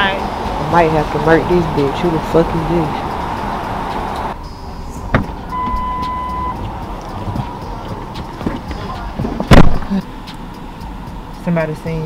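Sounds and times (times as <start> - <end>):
car interior hum: 0.0 - 12.0
electronic beep: 5.5 - 6.6.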